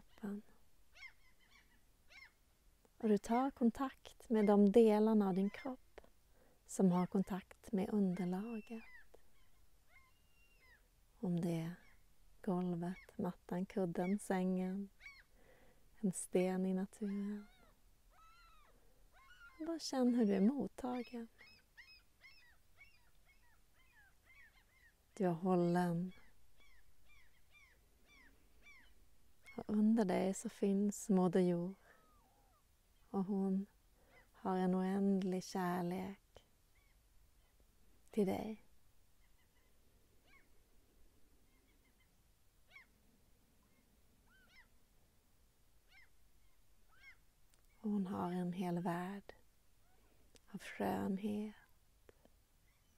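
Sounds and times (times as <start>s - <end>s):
faint bird calls: 0.0s - 2.4s, 7.0s - 10.9s, 12.8s - 15.8s, 16.9s - 30.0s, 31.7s - 33.2s, 34.0s - 34.4s, 36.7s - 37.6s, 38.5s - 40.6s, 41.4s - 43.0s, 43.6s - 44.8s, 45.8s - 47.8s.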